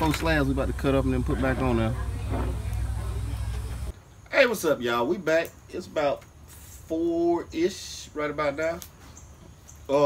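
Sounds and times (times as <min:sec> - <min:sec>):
low outdoor rumble: 0:00.0 - 0:04.4.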